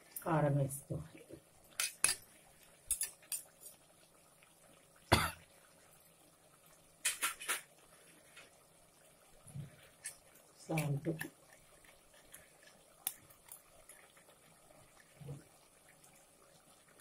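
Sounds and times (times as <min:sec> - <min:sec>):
utensils clinking on metal pot: 0:01.8 - 0:02.2.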